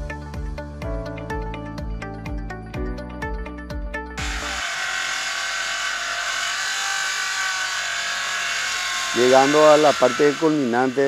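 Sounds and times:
circular saw cutting wood: 0:04.2 - 0:11.0.

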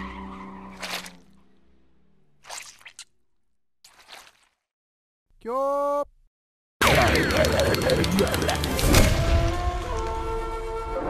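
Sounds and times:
wet squelching: 0:00.7 - 0:01.2, 0:02.4 - 0:03.2, 0:03.9 - 0:04.7.

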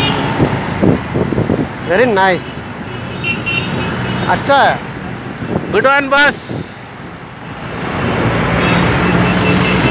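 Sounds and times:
street traffic: 0:00.0 - 0:09.9.

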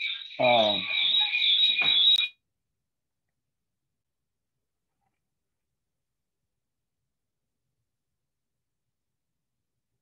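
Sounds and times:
high-pitched two-tone whine: 0:00.0 - 0:02.4
person speaking: 0:00.4 - 0:00.8.

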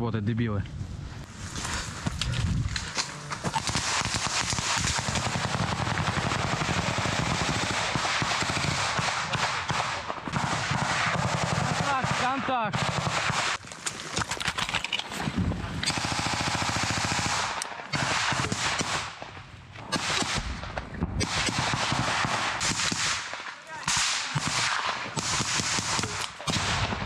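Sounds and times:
automatic gunfire bursts: 0:03.6 - 0:13.6, 0:15.8 - 0:19.1, 0:21.2 - 0:27.0.

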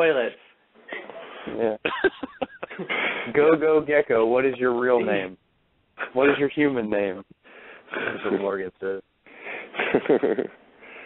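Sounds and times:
person laughing: 0:01.8 - 0:03.3, 0:07.9 - 0:08.5, 0:09.5 - 0:10.6.

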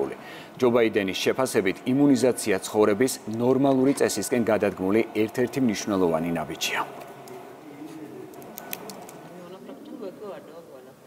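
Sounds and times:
low murmured voices: 0:00.0 - 0:11.0.

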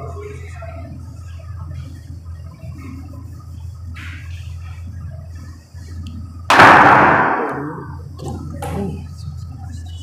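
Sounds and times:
loud burst of noise: 0:06.5 - 0:08.0.

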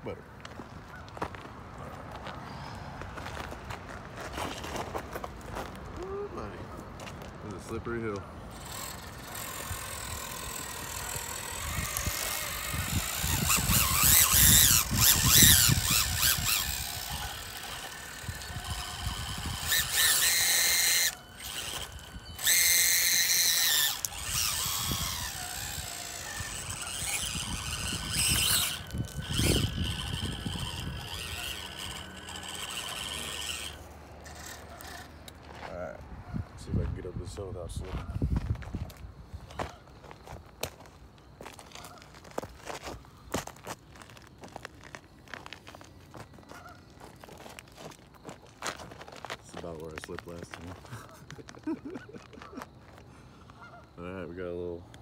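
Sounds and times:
electric motors whining: 0:07.5 - 0:35.6.

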